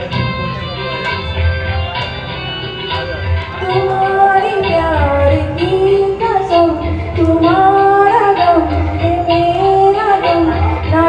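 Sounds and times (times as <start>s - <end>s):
recorded accompaniment with beat: 0.0s - 11.0s
woman singing into microphone: 3.6s - 11.0s.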